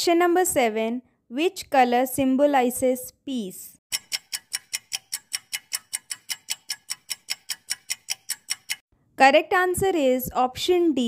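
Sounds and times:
clock ticking: 3.9s - 8.8s.

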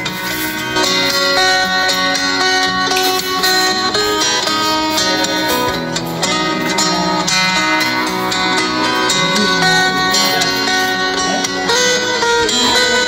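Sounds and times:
plucked guitar music: 0.0s - 13.0s.

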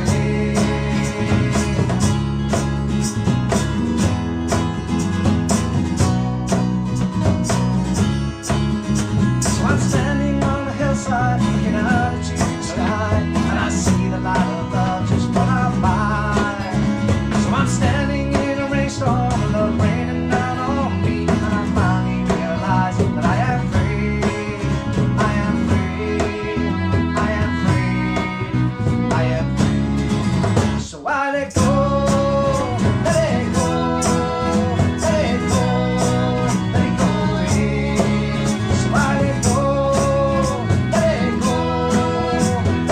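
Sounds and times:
bass guitar: 0.0s - 42.9s
strummed acoustic guitars: 0.0s - 42.9s
sliding fiddle melody: 19.9s - 30.4s, 31.8s - 42.9s.

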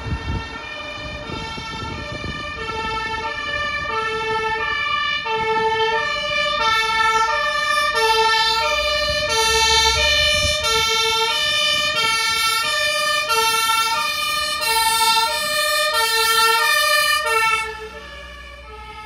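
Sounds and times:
two-tone fire truck siren: 0.0s - 19.0s
truck engine running: 6.2s - 15.9s.

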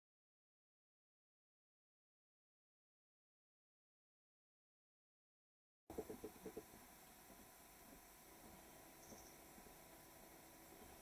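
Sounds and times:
faint background hiss: 5.9s - 11.0s.

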